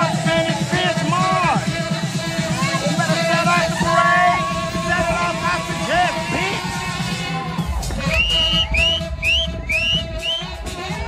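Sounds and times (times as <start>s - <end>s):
dance music with heavy bass beat: 0.0s - 11.0s
saxophone playing: 1.4s - 4.6s, 6.8s - 11.0s.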